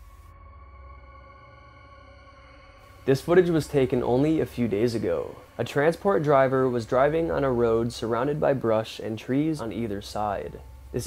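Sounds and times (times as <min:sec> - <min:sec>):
ambient electronic drone: 0:00.0 - 0:11.0.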